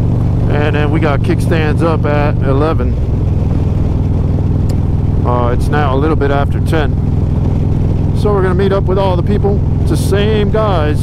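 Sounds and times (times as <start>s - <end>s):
wind rush: 0.0s - 8.3s
motorcycle engine cruising: 0.0s - 11.0s.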